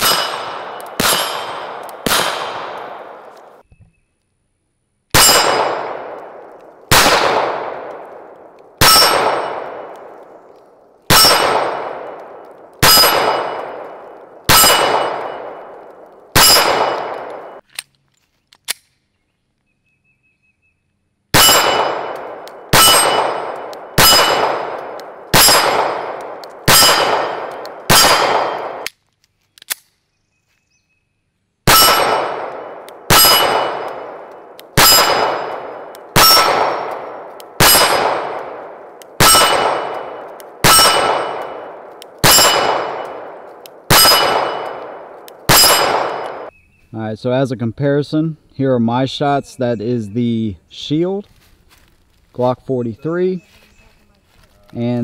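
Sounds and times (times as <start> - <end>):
steel plate ringing: 0.0 - 1.6, 5.2 - 5.9, 8.8 - 9.6, 11.1 - 11.6, 14.5 - 15.5, 22.8 - 24.8, 26.7 - 28.2, 31.7 - 32.5, 33.1 - 34.2, 34.8 - 38.1, 39.2 - 43.2, 43.9 - 44.9, 45.5 - 46.5
pistol shots: 0.0 - 3.6, 5.1 - 10.5, 11.1 - 17.6, 21.3 - 28.9, 31.7 - 46.5.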